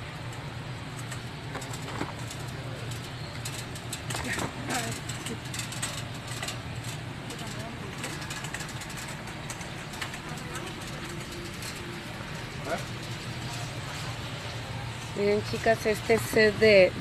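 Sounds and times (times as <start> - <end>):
steady low hum: 0.0 - 17.0
light clicks and rustles: 0.3 - 16.6.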